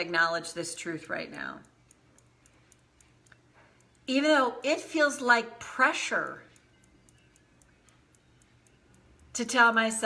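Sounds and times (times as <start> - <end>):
fingertips tapping on hand: 1.1 - 4.2, 6.2 - 9.8.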